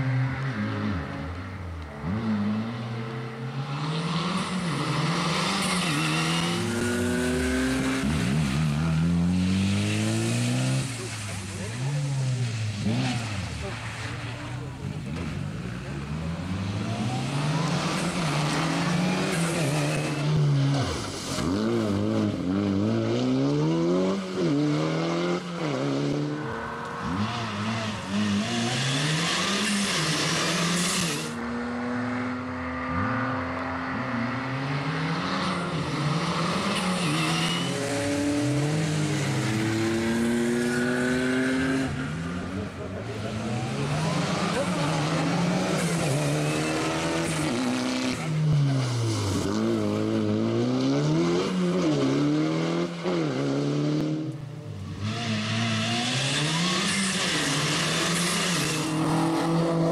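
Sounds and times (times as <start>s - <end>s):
rally car engine revving: 0.0s - 59.9s
tyres hissing on wet road: 5.7s - 14.8s.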